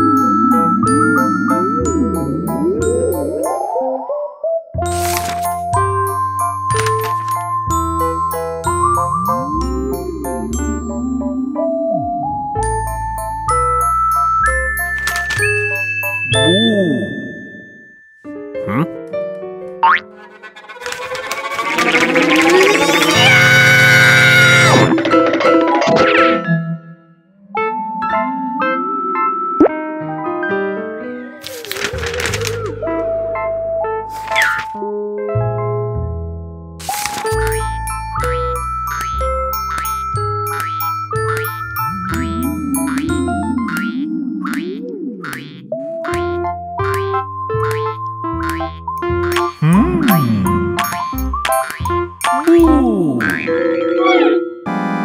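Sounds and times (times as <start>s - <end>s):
cartoon music and sound effects: 0.0s - 5.4s, 8.0s - 12.8s, 18.6s - 19.0s, 19.8s - 29.9s, 37.3s - 55.0s
quick rising glide: 20.1s - 23.7s
light plucky music: 37.4s - 54.3s.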